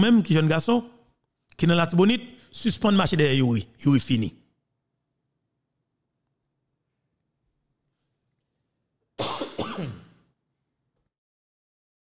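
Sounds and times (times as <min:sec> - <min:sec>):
man coughing: 0:09.2 - 0:10.2.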